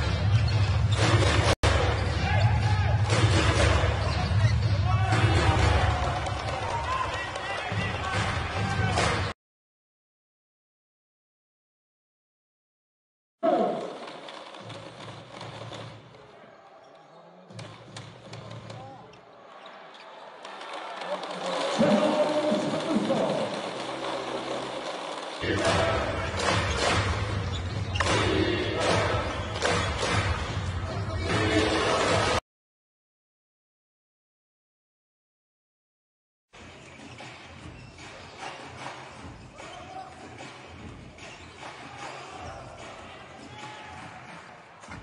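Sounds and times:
crowd noise and voices: 0.0s - 9.4s, 13.6s - 32.4s.

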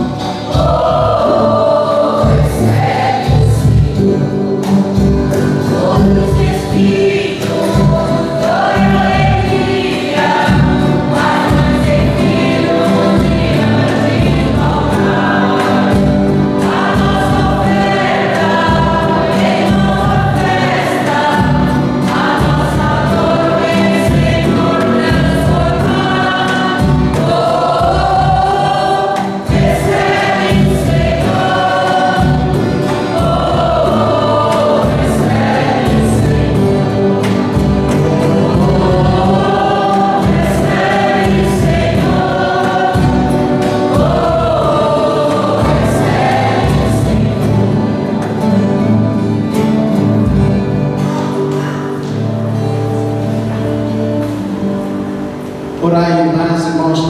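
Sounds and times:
acoustic guitars: 0.0s - 57.0s
congregation singing a hymn: 0.0s - 57.0s.

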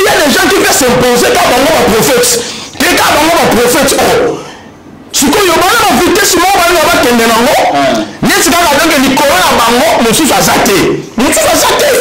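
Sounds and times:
man talking loudly: 0.0s - 4.5s, 5.1s - 12.0s.

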